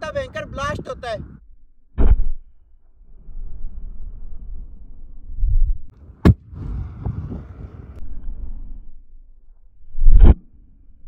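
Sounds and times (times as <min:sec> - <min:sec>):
low rushing noise: 0:05.9 - 0:08.8
balloon exploding bang: 0:06.1 - 0:07.4.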